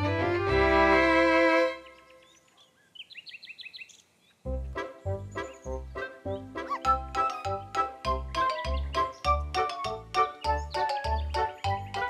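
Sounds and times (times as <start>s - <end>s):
bouncy cartoon music: 0.0s - 1.8s, 4.5s - 12.0s
high rising cartoon chirps: 6.7s - 12.0s.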